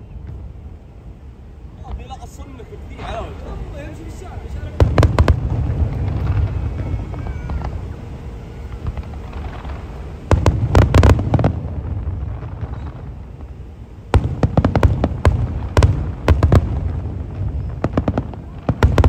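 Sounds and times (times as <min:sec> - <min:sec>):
fireworks bangs: 0:01.8 - 0:19.0.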